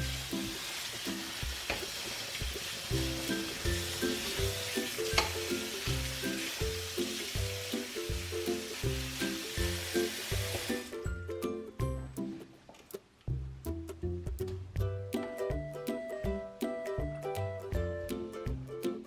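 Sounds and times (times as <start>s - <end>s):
tap water splashing into colander: 5.0s - 5.5s.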